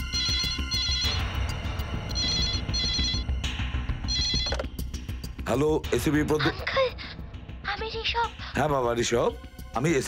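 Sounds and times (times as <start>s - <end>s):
electronic telephone ringing: 0.0s - 1.4s, 2.1s - 3.3s, 4.0s - 4.7s
low background music: 0.0s - 10.0s.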